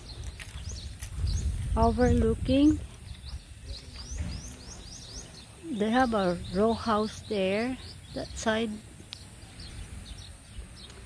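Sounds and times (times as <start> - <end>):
low outdoor rumble: 0.0 - 11.0
small bird chirping: 0.0 - 11.0.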